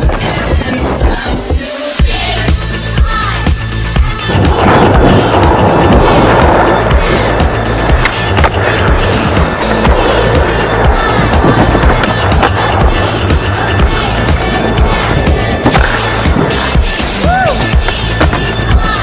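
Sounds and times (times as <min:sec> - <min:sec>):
skateboard wheels rolling on asphalt: 0:00.0 - 0:01.9, 0:04.2 - 0:19.0
song: 0:00.0 - 0:19.0
skateboard clacks: 0:04.3 - 0:19.0.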